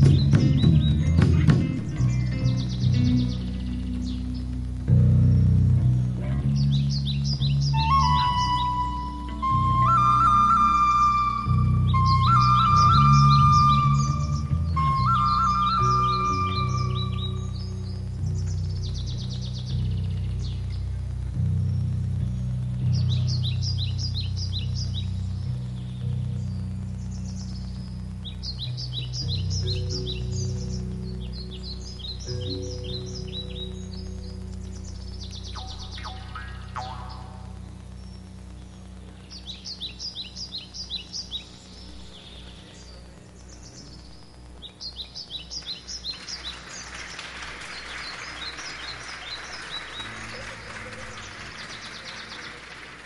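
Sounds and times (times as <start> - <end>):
steady hiss-like noise: 0.0 - 53.0.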